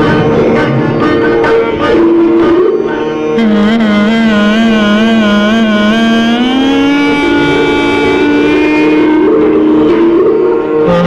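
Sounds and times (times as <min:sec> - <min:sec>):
clarinet playing: 0:00.0 - 0:11.0
steady drone: 0:00.0 - 0:11.0.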